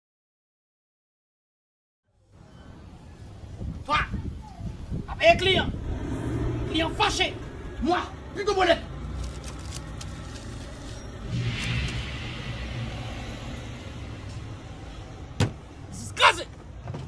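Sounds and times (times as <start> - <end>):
low outdoor rumble: 3.2 - 16.0.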